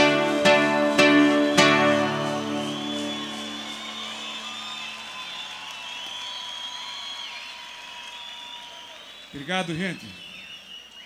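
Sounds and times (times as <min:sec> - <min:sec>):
guitar chord ringing: 0:00.0 - 0:04.5
audience applauding: 0:00.0 - 0:11.0
audience whistling: 0:00.0 - 0:11.0.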